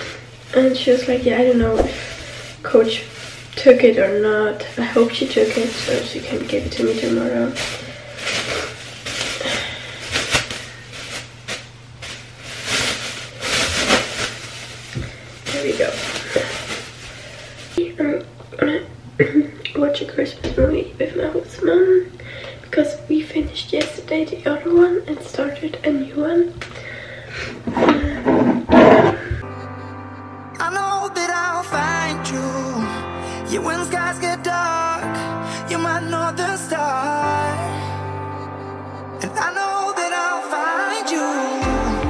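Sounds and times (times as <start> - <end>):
plastic bag crinkling: 0.0 - 17.8.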